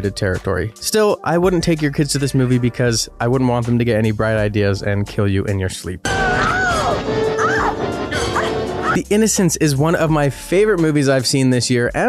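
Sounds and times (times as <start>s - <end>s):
horror film music: 6.0s - 9.1s.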